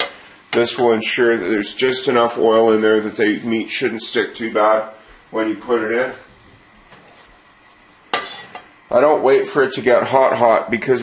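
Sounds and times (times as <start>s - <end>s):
metal pan clinking on grate: 8.1s - 8.7s.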